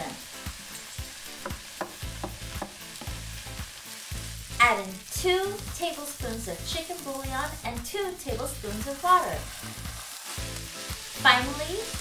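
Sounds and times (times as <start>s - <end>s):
vegetables sizzling in oil: 0.0s - 12.0s
spatula scraping and tapping pan: 0.8s - 3.2s.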